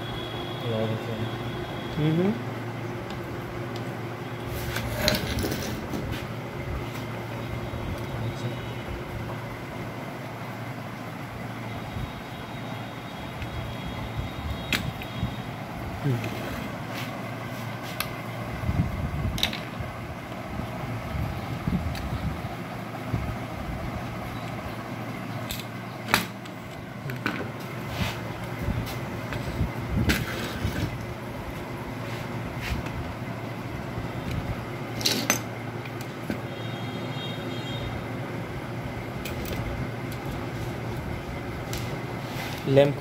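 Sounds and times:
low background hum: 0.0s - 43.0s.

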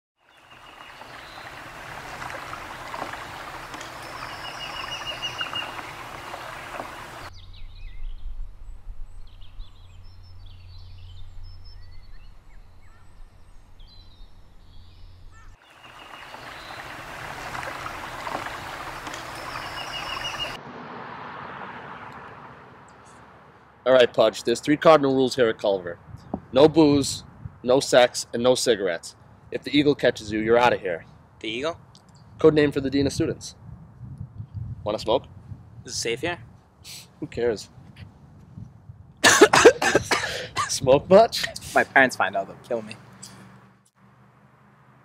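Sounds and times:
birds chirping and trilling: 0.2s - 20.6s
steady hiss: 0.4s - 7.3s, 15.6s - 20.6s.

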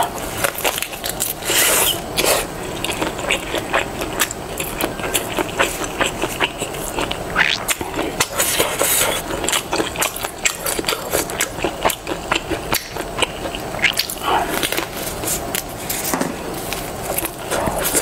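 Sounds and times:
chewing with wet mouth noises: 0.0s - 16.0s, 16.7s - 18.0s.

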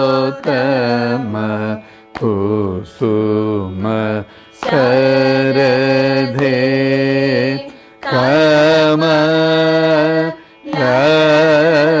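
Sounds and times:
person singing with sliding pitch: 0.0s - 12.0s.

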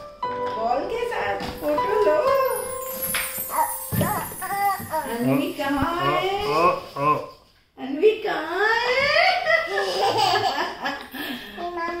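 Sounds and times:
toddler laughing: 9.5s - 11.0s.

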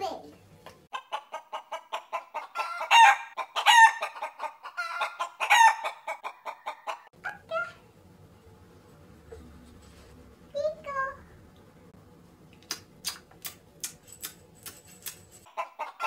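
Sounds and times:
chicken clucking: 0.9s - 7.4s, 15.4s - 16.0s
chicken squawks: 0.9s - 7.5s.

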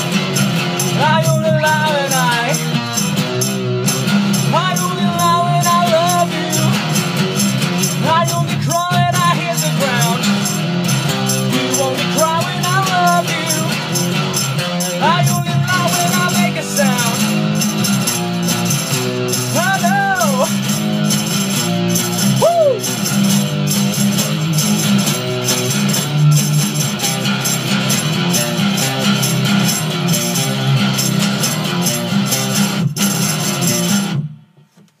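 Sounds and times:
acoustic guitar strummed hard: 0.0s - 34.6s.

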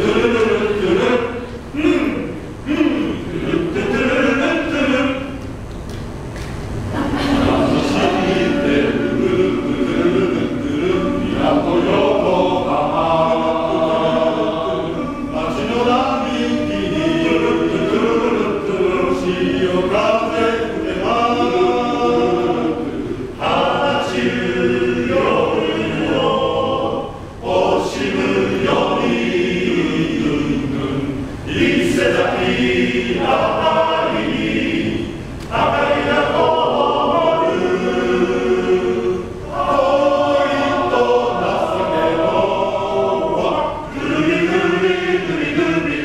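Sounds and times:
male choir singing: 0.0s - 5.4s, 7.0s - 46.0s.

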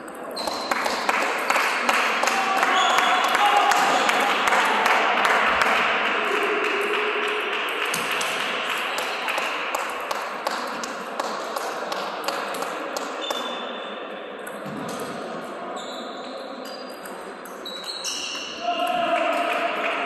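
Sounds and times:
sports hall noise: 0.0s - 20.0s.

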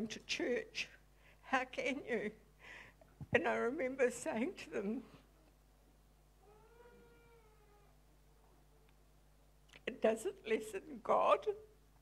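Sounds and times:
faint high-pitched voice-like cry: 6.4s - 8.0s.

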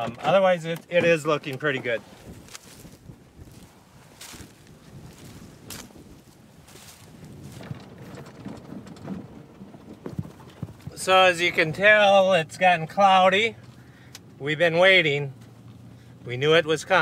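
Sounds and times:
stalks rustling and crackling: 0.0s - 12.0s
footsteps crunching on dry soil: 1.0s - 8.0s.

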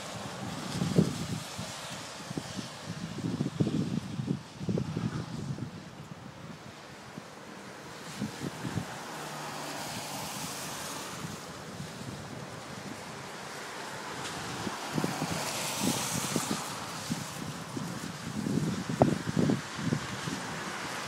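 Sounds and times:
wind buffeting microphone: 0.0s - 7.3s, 7.9s - 9.2s, 9.9s - 21.0s
gusty storm wind: 0.0s - 21.0s.

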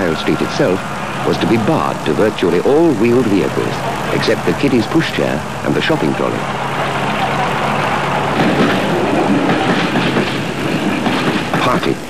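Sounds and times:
train running along track: 0.0s - 12.0s.

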